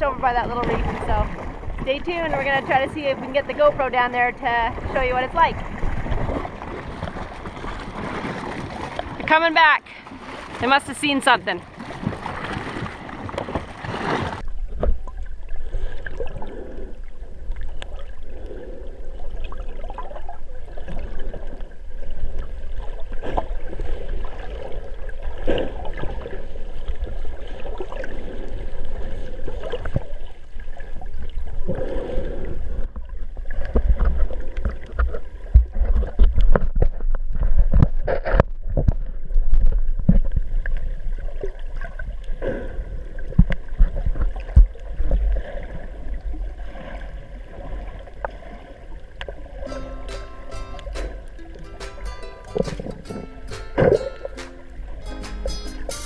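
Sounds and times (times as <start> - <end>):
underwater knocks and clicks: 32.9 - 40.8, 43.2 - 45.4, 49.2 - 55.5.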